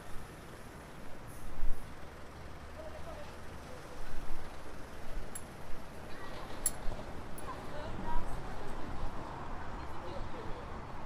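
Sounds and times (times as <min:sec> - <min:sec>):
traffic hum: 0:00.0 - 0:11.0
indistinct voices of passers-by: 0:00.2 - 0:11.0.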